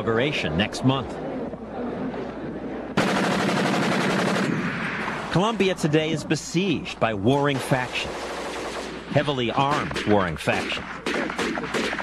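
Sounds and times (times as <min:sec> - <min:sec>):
machine gun firing rapid burst: 0:03.0 - 0:04.6, 0:11.0 - 0:12.0.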